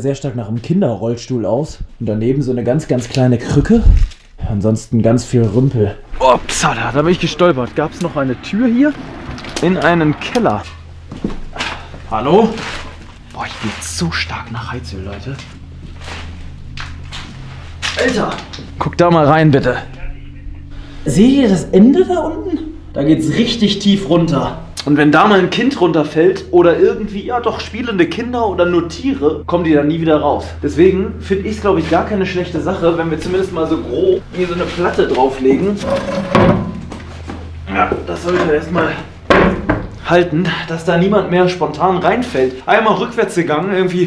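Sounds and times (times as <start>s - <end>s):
steady low hum: 0.0s - 44.0s
board scraping and handling: 35.8s - 36.6s.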